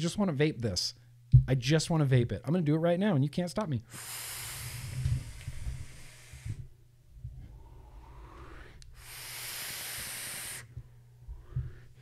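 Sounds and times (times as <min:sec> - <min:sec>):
quiet breathing: 0:03.8 - 0:12.0
airy hiss of vape draw: 0:03.9 - 0:06.7, 0:08.5 - 0:10.7.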